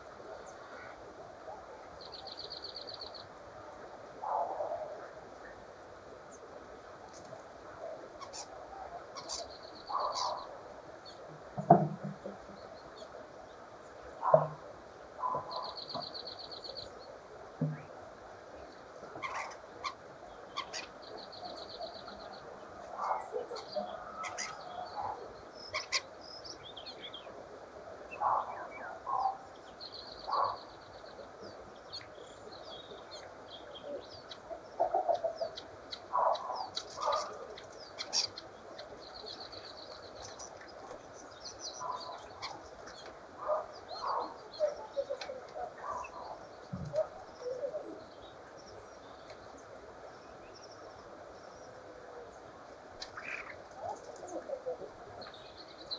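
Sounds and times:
starling chattering calls: 9.2s - 10.5s, 23.0s - 26.1s.

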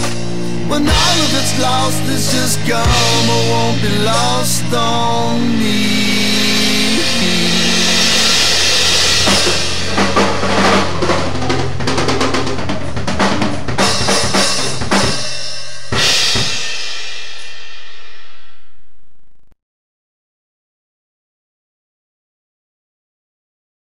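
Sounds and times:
guitar and bass chord: 0.0s - 13.3s
fast drum fills: 0.0s - 17.6s
cymbal and drum hit: 6.7s - 12.6s, 13.8s - 18.9s.

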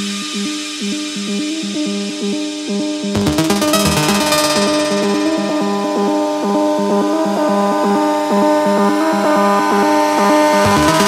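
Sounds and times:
electronic dance music synth riff: 3.2s - 8.5s, 10.2s - 11.0s.

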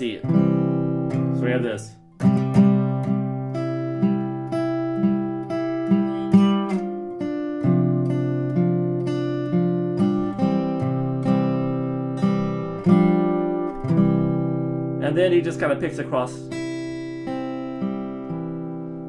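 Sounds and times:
acoustic guitar picked notes: 0.0s - 19.0s.

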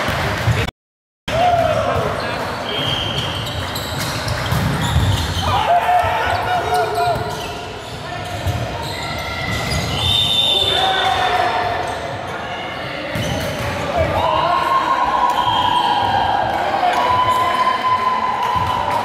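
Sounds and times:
shoes squeaking on wooden court: 2.6s - 5.6s, 6.6s - 10.3s
players calling out: 4.4s - 12.0s.

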